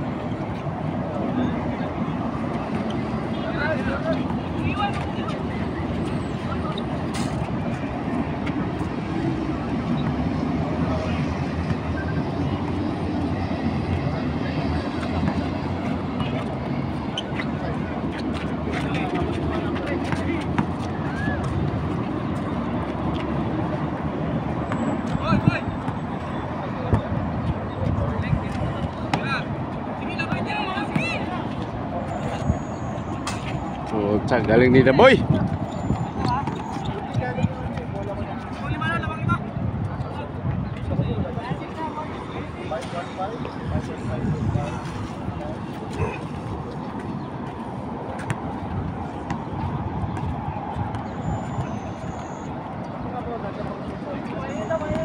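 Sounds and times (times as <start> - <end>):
players' voices at a distance: 0.0 - 55.0
road traffic rumble: 0.0 - 55.0.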